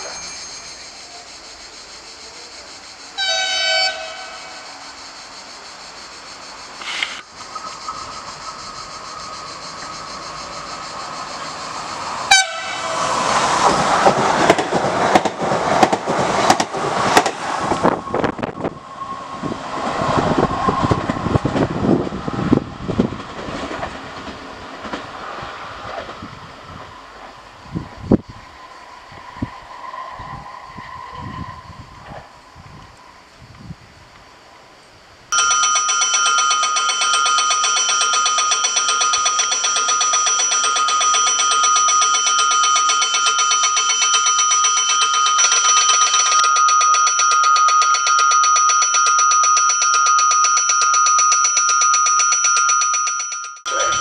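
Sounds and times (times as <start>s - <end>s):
electric warning bell ringing: 0.0s - 1.2s, 8.8s - 15.9s, 35.4s - 54.0s
electric train rumbling past: 0.0s - 52.6s.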